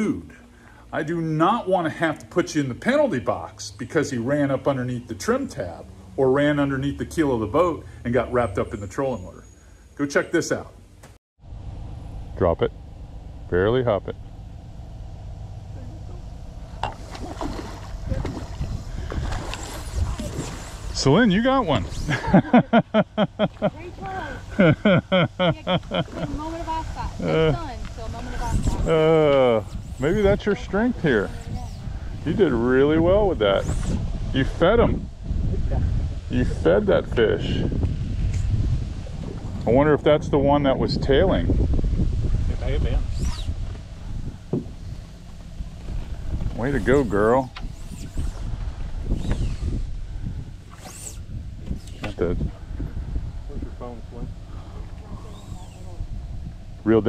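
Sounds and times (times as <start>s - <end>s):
wind buffeting microphone: 11.7s - 57.0s
person laughing: 22.0s - 26.4s, 27.2s - 27.8s
high rising-and-falling whistles: 49.1s - 49.8s.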